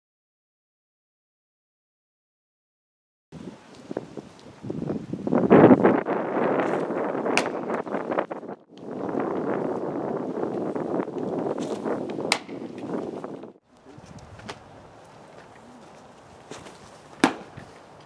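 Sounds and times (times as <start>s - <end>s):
wind buffeting microphone: 3.4s - 18.0s.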